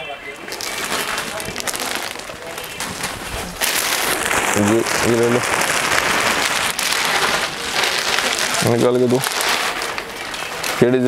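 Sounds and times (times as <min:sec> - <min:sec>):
plastic bags crinkling: 0:00.4 - 0:11.0.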